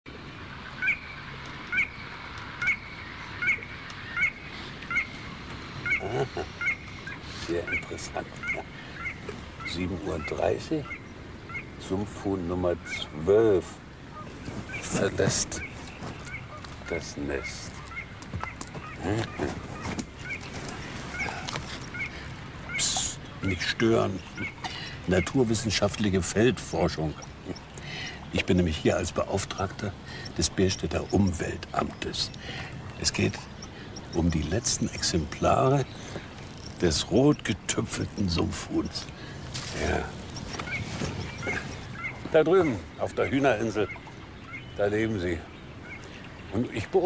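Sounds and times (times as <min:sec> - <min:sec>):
high chirps: 0:20.2 - 0:44.8.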